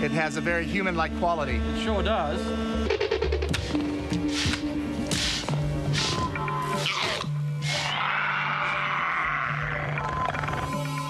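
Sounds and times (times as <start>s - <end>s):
film soundtrack music: 0.0s - 11.0s.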